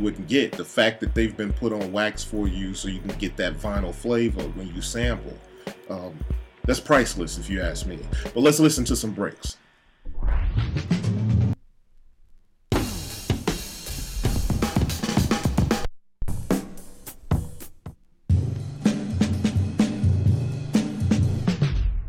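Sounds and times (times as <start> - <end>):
drum breaks from vinyl: 0.0 - 11.6, 12.7 - 22.0.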